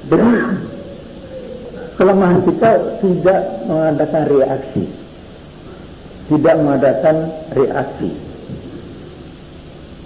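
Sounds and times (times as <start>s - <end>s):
old recording hiss: 0.0s - 10.0s
man speaking: 2.0s - 5.0s, 6.3s - 8.8s.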